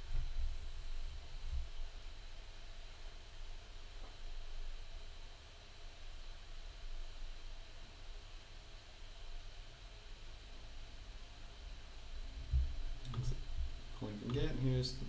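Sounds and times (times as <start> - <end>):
faint microphone hiss: 0.0 - 15.0
soft low thump: 12.4 - 13.7.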